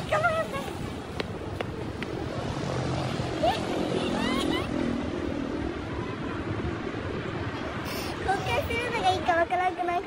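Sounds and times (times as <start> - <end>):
distant traffic rumble: 0.0 - 10.0.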